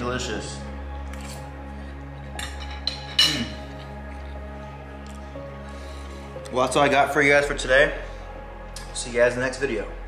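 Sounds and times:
background music: 0.0s - 10.0s
cutlery clinking: 2.4s - 3.7s.

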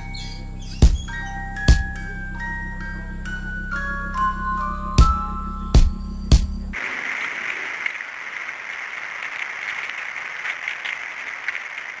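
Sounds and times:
chiming music ending on a hit: 0.0s - 6.6s.

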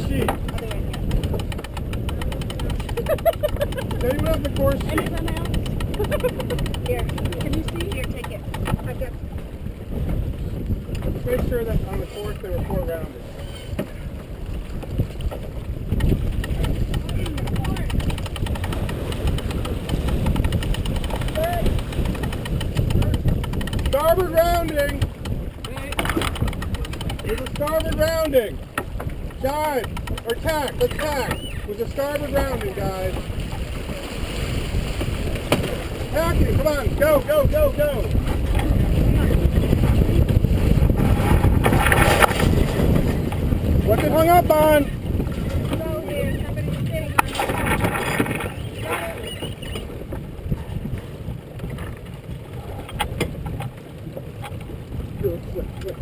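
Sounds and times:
wind and water rushing: 0.0s - 56.0s.

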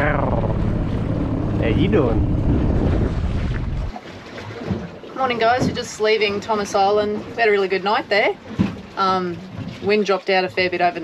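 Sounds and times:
wind rumbling on microphone: 0.0s - 4.0s.

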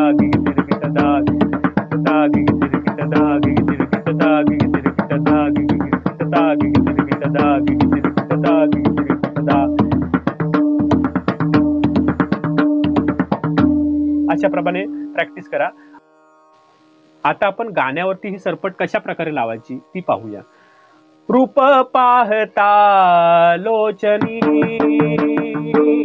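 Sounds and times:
melodic backing with drone: 0.0s - 16.1s.

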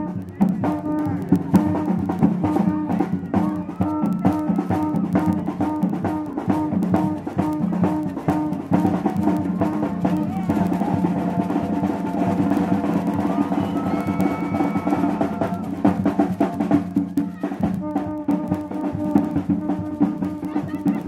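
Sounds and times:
drum roll: 0.0s - 21.0s
drum-led dance music: 0.0s - 21.0s.

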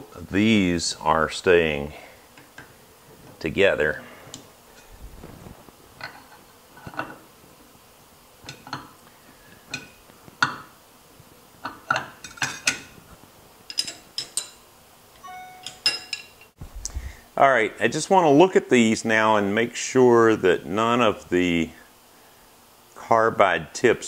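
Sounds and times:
ringing metal clinks: 15.2s - 16.5s.

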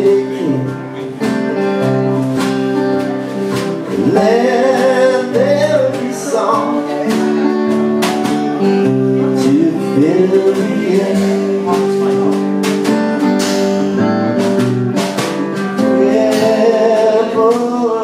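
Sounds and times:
drum kit hits: 0.0s - 17.8s
electric and acoustic guitars: 0.0s - 18.0s.

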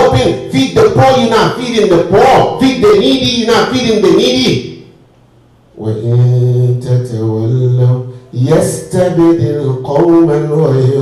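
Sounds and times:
man chanting: 0.0s - 4.7s, 5.8s - 11.0s.

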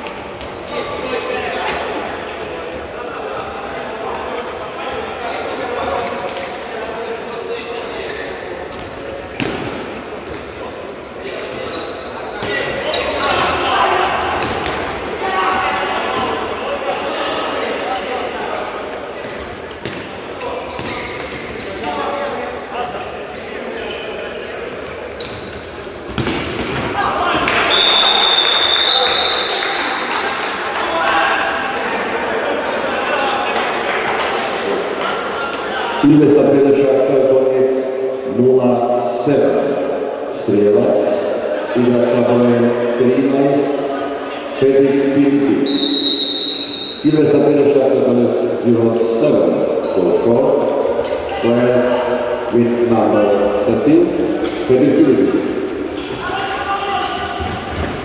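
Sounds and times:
murmur of voices: 0.0s - 58.0s
referee's whistle: 27.7s - 29.8s, 45.6s - 47.2s.

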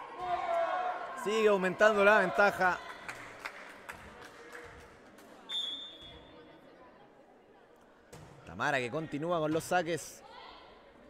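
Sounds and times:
murmur of gym hall: 0.0s - 11.0s
referee's whistle: 5.5s - 6.1s.

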